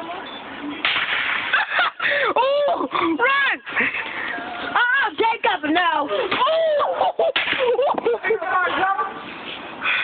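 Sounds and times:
loud bang: 0.8s - 1.7s
bottle rockets cracking: 0.8s - 1.9s, 7.3s - 7.9s
people yelling and laughing: 1.5s - 9.1s.

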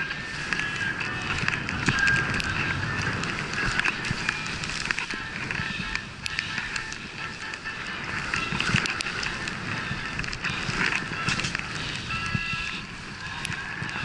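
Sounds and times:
skis sliding through powder snow: 0.0s - 14.0s
small clicks: 0.0s - 14.0s.

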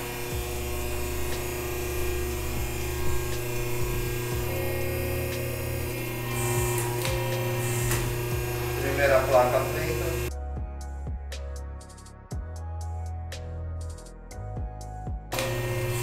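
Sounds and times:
hydraulic press motor hum: 0.0s - 10.3s, 15.3s - 16.0s.

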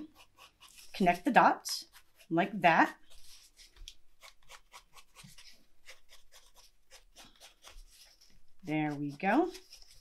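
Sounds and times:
pencil scratching on cardboard: 0.0s - 10.0s.

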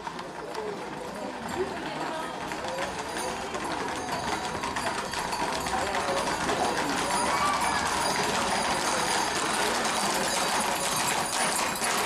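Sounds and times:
crowd voices talking: 0.0s - 12.0s
horse hooves on pavement: 0.0s - 12.0s.

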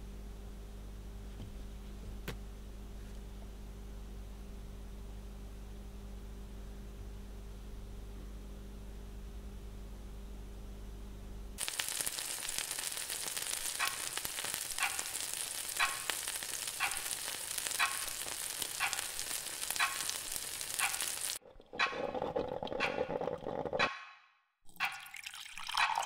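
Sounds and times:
food sizzling in a pan: 11.6s - 21.4s
sharp ticking: 11.6s - 21.4s
scattered clicks: 13.6s - 15.1s, 15.8s - 16.2s, 17.8s - 18.2s.

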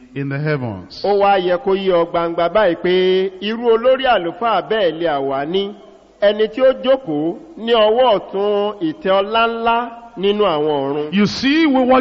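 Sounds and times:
man chanting speech: 0.1s - 12.0s.

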